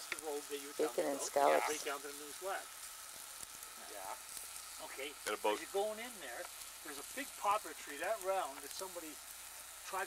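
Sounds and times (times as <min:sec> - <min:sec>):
small crackling ticks: 0:00.0 - 0:00.6, 0:02.8 - 0:10.0
food sizzling on a grill: 0:00.0 - 0:10.0.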